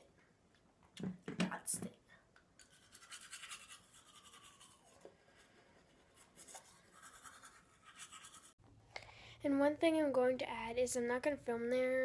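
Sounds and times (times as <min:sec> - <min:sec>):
toothbrush scrubbing teeth: 0:02.6 - 0:08.6.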